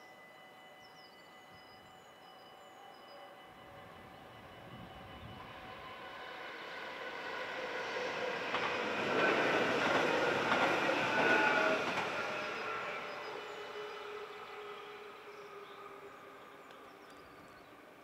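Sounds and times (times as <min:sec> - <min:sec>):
electric train passing: 0:00.0 - 0:18.0.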